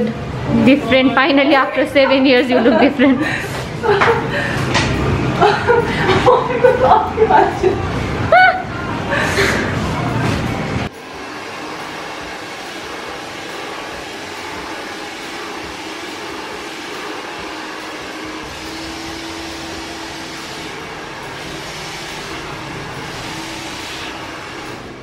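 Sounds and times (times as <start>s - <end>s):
hair dryer blowing: 10.6s - 25.0s.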